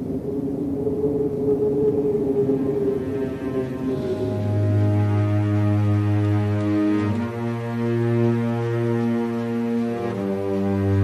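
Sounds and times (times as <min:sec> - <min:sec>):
low rumble: 0:00.0 - 0:11.0
low sustained drone: 0:00.0 - 0:11.0.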